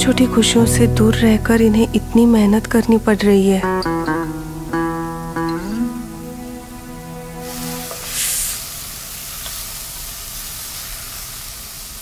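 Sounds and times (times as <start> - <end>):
food sizzling in hot oil: 7.4 - 12.0.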